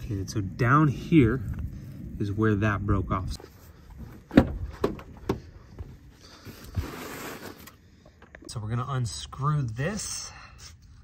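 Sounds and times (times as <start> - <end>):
rustling scrape in dirt: 6.2 - 7.8.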